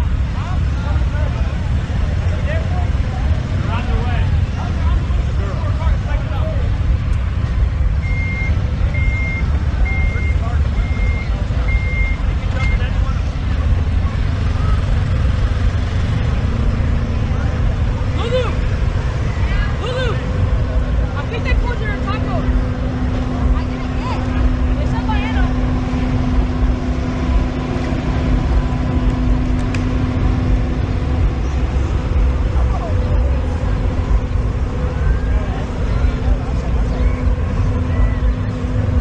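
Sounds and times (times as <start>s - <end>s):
low rumble: 0.0s - 39.0s
scattered voices: 0.0s - 39.0s.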